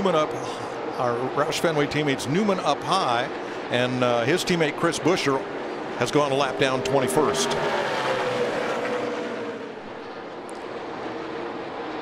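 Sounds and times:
race car engines: 0:00.0 - 0:12.0
race car passing by: 0:03.3 - 0:12.0.

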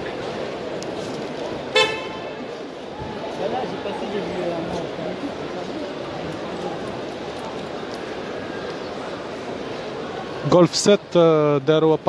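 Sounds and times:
crowd hubbub: 0:00.0 - 0:12.0.

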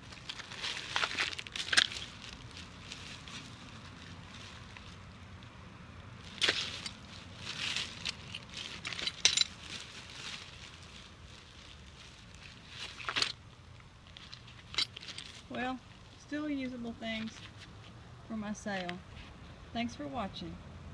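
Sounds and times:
small hard items clattering: 0:00.0 - 0:05.1, 0:06.2 - 0:16.0
plastic bags rustling: 0:00.0 - 0:05.5, 0:06.1 - 0:16.2.

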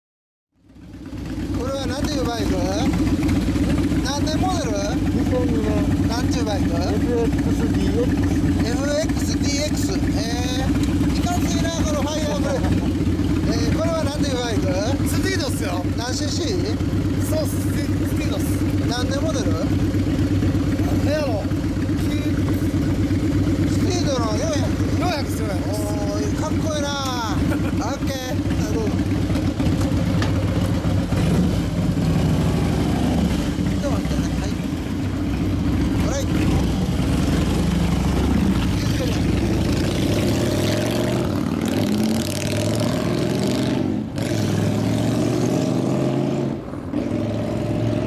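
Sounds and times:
motorcycle engine idling: 0:00.6 - 0:42.8
people talking: 0:01.5 - 0:03.0, 0:04.0 - 0:19.8, 0:20.7 - 0:23.0, 0:23.6 - 0:29.1, 0:33.7 - 0:34.8, 0:35.9 - 0:37.1, 0:38.7 - 0:39.6.

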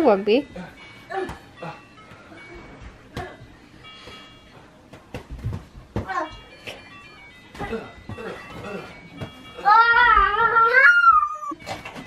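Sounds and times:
pet animal wavering cry: 0:10.4 - 0:11.6.

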